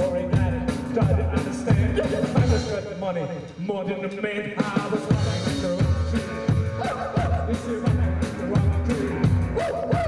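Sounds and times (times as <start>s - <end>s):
bouncing double bass line: 0.0s - 3.1s, 5.0s - 10.0s
rock and roll band playing: 0.0s - 10.0s.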